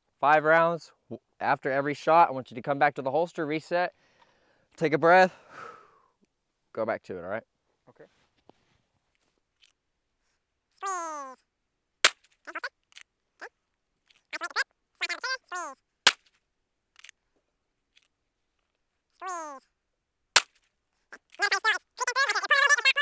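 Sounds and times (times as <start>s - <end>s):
handgun shots: 20.4s - 20.6s.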